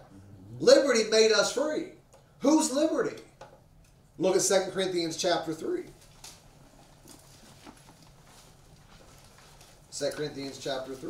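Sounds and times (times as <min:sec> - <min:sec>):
low room hum: 0:00.0 - 0:11.0
pages turning: 0:05.8 - 0:11.0.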